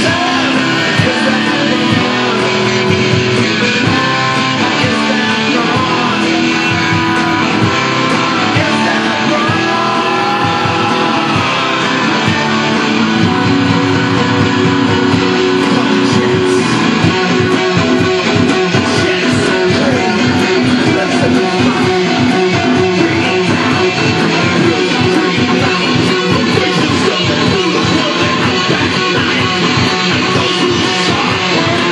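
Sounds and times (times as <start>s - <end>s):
garage rock band playing: 0.0s - 31.9s
strummed electric guitar: 0.0s - 31.9s.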